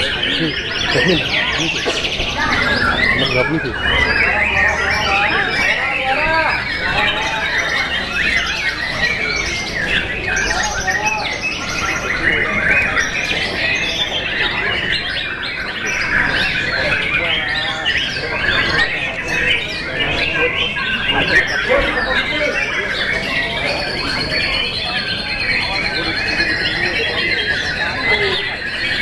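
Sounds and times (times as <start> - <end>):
birds whistling and chattering: 0.0 - 29.0
people's voices: 0.0 - 29.0.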